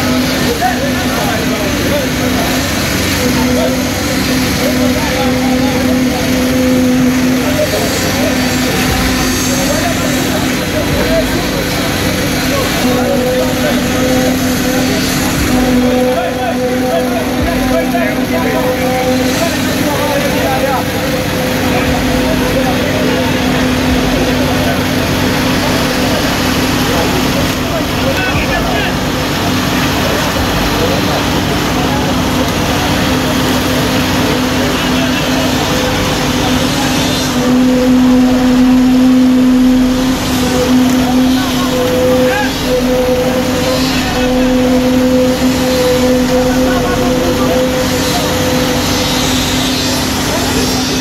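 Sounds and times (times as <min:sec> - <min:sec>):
crowd chatter: 0:00.0 - 0:51.0
heavy diesel machinery running: 0:00.0 - 0:51.0.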